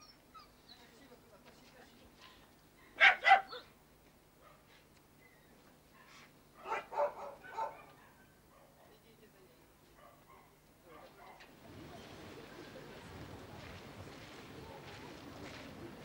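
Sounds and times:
dog barking: 3.0s - 3.7s, 6.6s - 8.8s, 10.0s - 11.5s.

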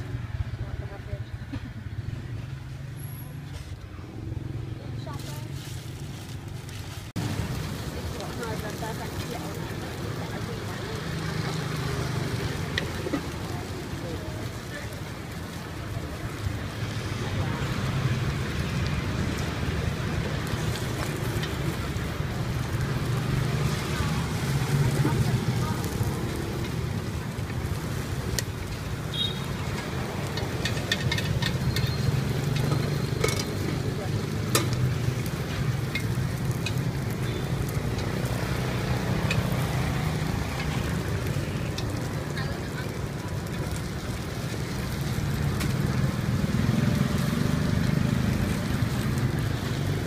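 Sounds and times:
wood fire burning: 1.8s - 50.0s
sharp clicks and crackles: 3.7s - 50.0s.

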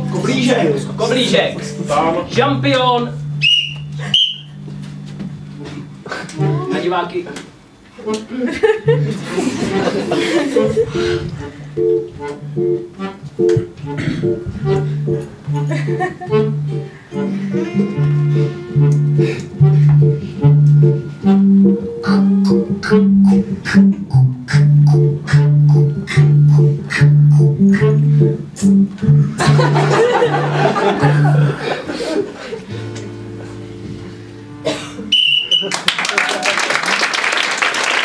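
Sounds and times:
accordion oom-pah music: 3.2s - 7.0s, 8.0s - 34.7s.

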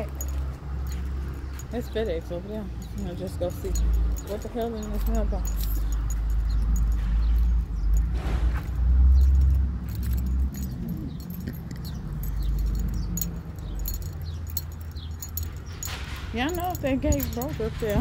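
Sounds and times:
keys jingling: 0.0s - 18.0s
wind rumble on microphone: 10.3s - 18.0s.

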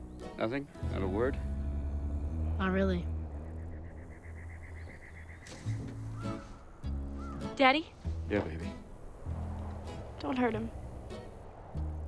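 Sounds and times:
crickets chirping: 0.6s - 12.0s
low steady rumble: 0.8s - 4.8s.

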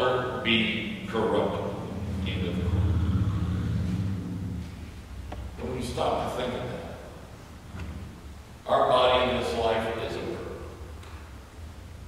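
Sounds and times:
low steady rumble: 0.2s - 12.0s
held low tones: 1.0s - 7.8s.

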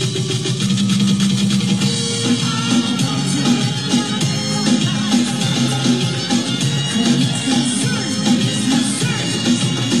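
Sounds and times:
drum and percussion beat: 0.0s - 10.0s
live band playing latin pop: 1.4s - 10.0s.

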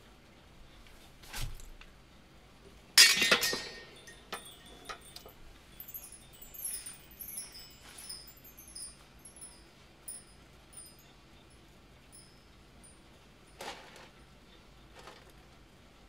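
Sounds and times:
bell-like tinkles: 3.1s - 14.6s.

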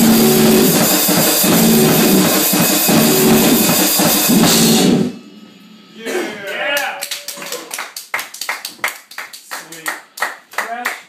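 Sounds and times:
people clapping: 6.5s - 11.0s.

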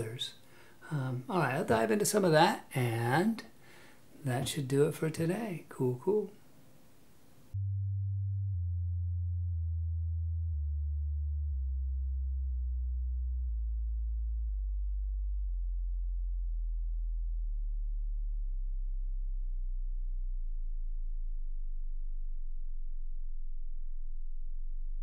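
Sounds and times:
low electronic tone: 7.5s - 25.0s.

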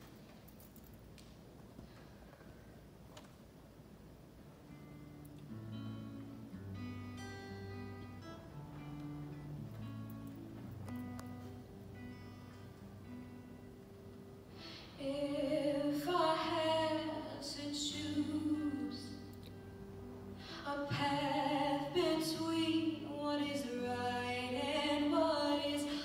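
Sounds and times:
acoustic guitar picking: 4.6s - 26.0s
woman singing: 15.0s - 19.4s, 20.5s - 26.0s.

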